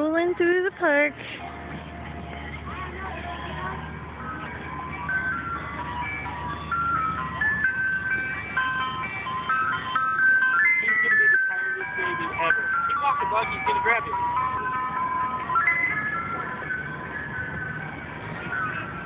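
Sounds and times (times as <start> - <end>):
ice cream truck chime: 0.0 - 19.0.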